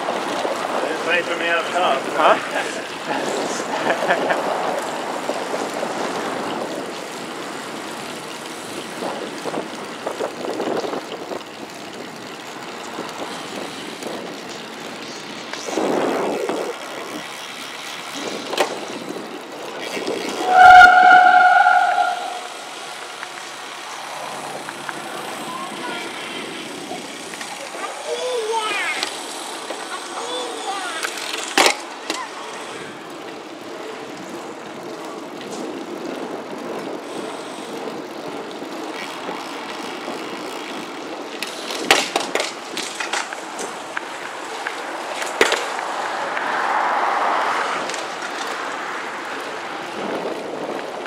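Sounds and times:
road and traffic noise: 0.0 - 51.0
wind rush on microphone: 2.5 - 12.3, 15.6 - 17.3, 49.6 - 51.0
loud steady tone: 20.4 - 23.2.

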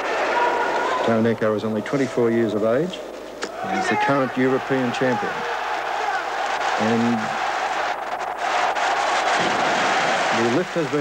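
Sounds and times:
crowd cheering and applauding: 0.0 - 1.1, 3.5 - 11.0.

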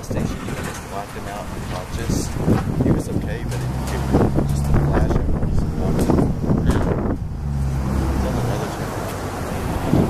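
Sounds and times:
vehicle engine humming: 0.0 - 10.0
wind buffeting microphone: 0.0 - 10.0.

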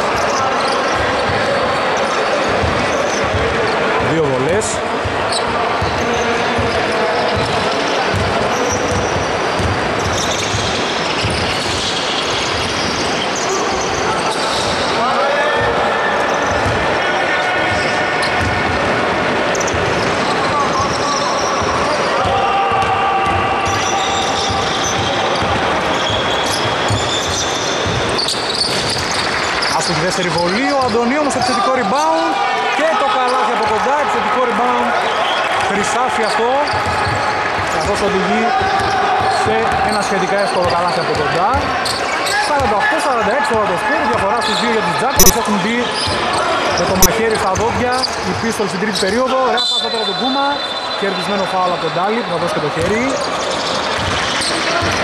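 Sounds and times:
players calling out: 0.0 - 55.0
basketball bouncing on hardwood: 8.1 - 12.8, 26.4 - 29.2.

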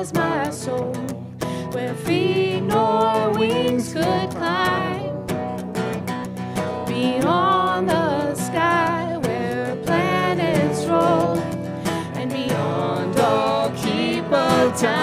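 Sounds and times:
strummed acoustic guitars: 0.0 - 15.0
voices singing a hymn: 1.8 - 5.1, 7.0 - 15.0.

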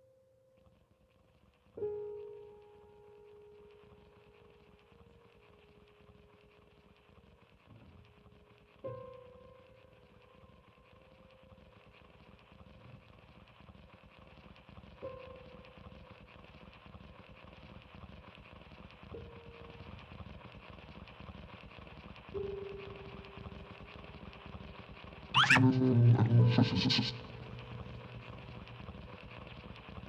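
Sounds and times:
faint hiss: 0.0 - 30.0.

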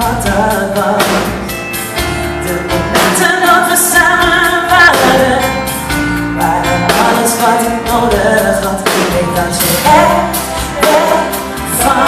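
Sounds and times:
woman singing into microphone: 0.0 - 1.5, 2.3 - 12.0
band accompaniment: 0.0 - 12.0.

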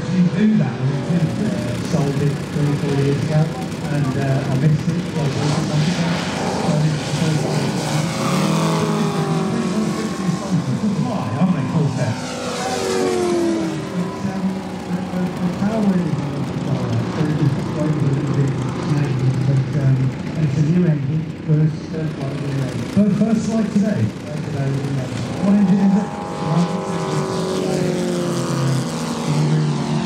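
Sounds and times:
model plane fly-by: 0.0 - 30.0
model plane radial engines: 0.0 - 30.0.

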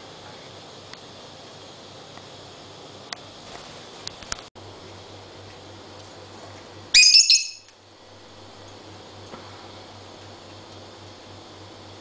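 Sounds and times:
lovebird shrill squawking chirps: 7.0 - 7.7.

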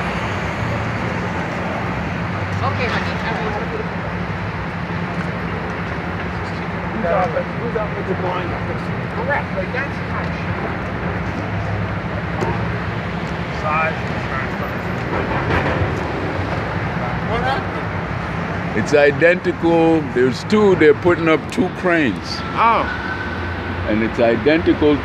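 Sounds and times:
distant voices: 0.0 - 25.0
traffic rumble: 0.0 - 25.0.

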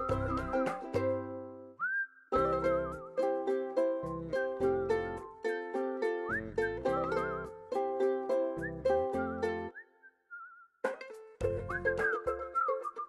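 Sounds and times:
plucked-string chords: 0.0 - 1.6, 2.4 - 9.7
whistled melody: 0.0 - 13.0.

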